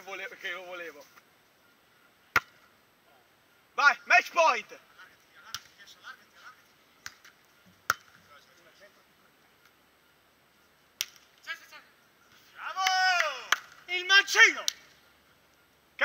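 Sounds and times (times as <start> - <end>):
hands slapping volleyball: 2.3 - 2.6, 5.4 - 5.8, 7.0 - 8.2, 11.0 - 11.3, 12.8 - 13.8
man shouting: 12.6 - 14.7.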